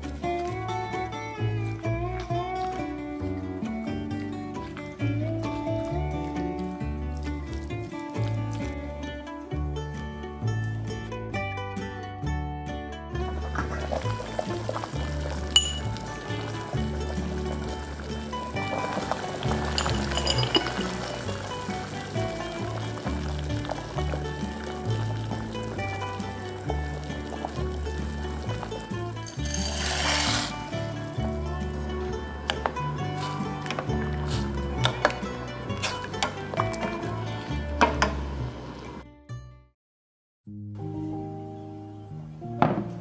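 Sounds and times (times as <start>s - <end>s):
background music with bass line: 0.0s - 39.6s
dry pasta pouring into water: 4.5s - 9.5s, 13.3s - 37.5s.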